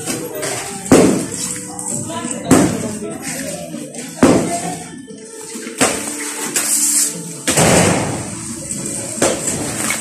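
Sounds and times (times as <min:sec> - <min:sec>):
sledgehammer striking concrete: 0:00.9 - 0:01.3.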